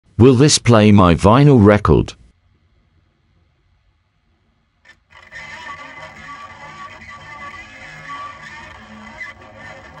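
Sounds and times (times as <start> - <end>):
record music playing: 4.8 - 10.0.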